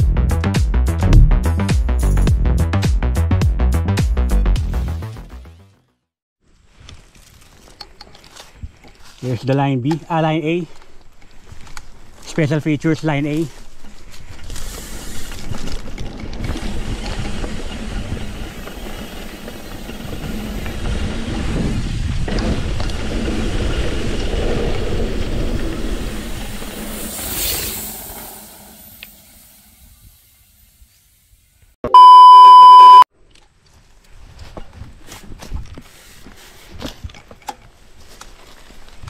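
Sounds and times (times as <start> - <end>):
mountain bike on dirt trail: 6.4 - 31.6, 33.2 - 39.0
wind on microphone: 19.6 - 27.0
censor bleep: 31.8 - 33.1.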